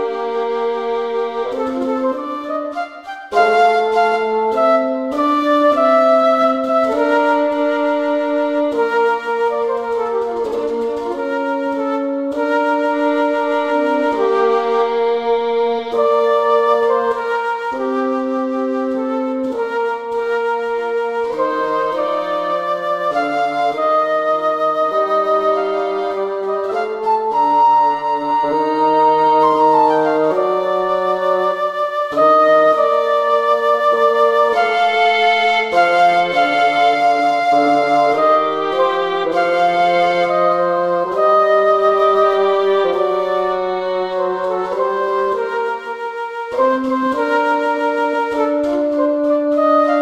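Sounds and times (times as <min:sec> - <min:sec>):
bassoon: 0:00.0 - 0:50.0
flute: 0:00.0 - 0:50.0
violin: 0:00.0 - 0:50.0.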